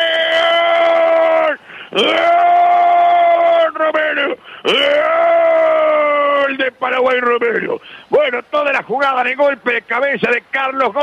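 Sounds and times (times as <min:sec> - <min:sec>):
radio commentator shouting goal: 0:03.0 - 0:11.0.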